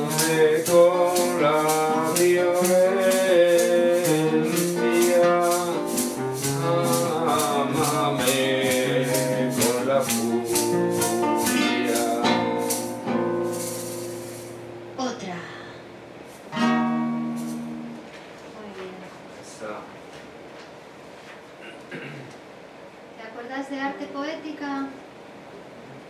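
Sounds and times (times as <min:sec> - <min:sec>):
hand shaker: 0:00.0 - 0:14.7, 0:17.3 - 0:17.8
acoustic guitar: 0:00.0 - 0:19.1.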